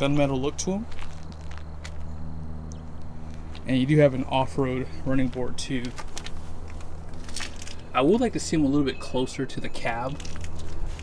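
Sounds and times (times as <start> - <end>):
steady low hum: 0.0 - 11.0
shoes scuffing on asphalt: 0.2 - 2.3.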